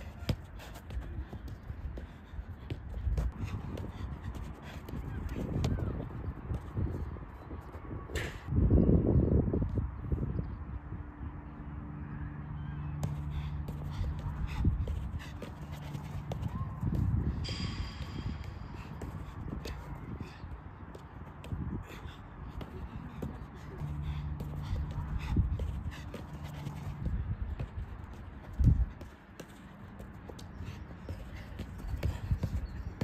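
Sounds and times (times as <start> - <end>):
football dribbled on turf: 0.0 - 8.3, 13.0 - 33.0
wind rumble on microphone: 0.0 - 29.1
football taps on turf: 24.3 - 33.0.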